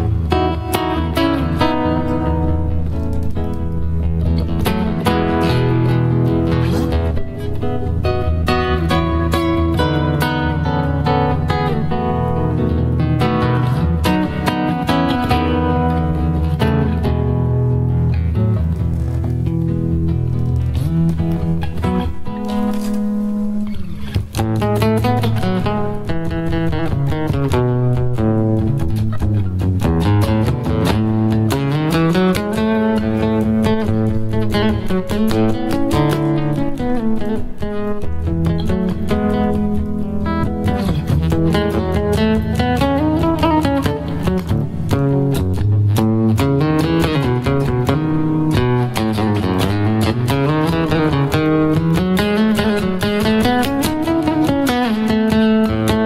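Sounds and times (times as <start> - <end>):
classical guitar fingerpicking: 0.0 - 56.0.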